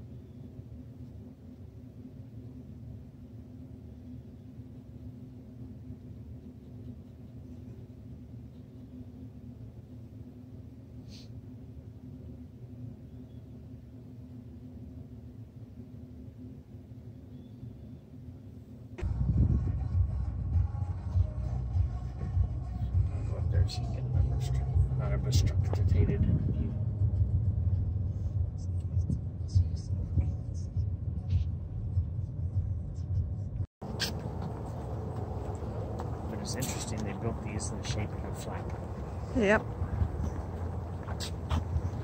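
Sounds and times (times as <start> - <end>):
car rumbling over parking lot: 33.8 - 42.0.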